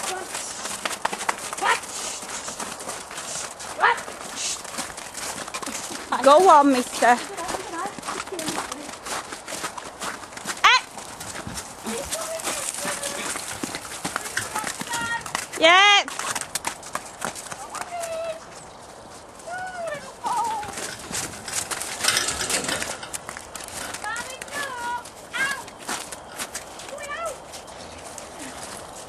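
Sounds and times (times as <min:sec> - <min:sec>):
hooves clip-clopping: 0:00.0 - 0:29.0.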